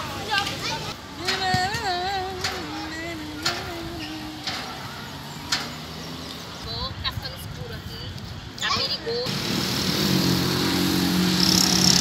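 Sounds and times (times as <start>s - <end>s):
background traffic: 0.0s - 12.0s.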